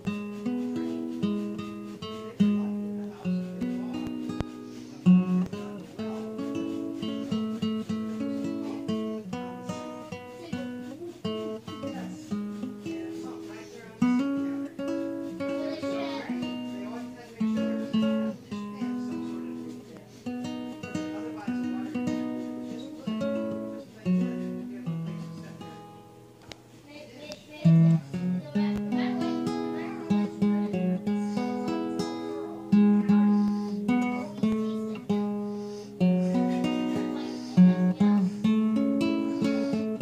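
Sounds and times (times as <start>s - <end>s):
fingerpicked acoustic guitar: 0.0s - 40.0s.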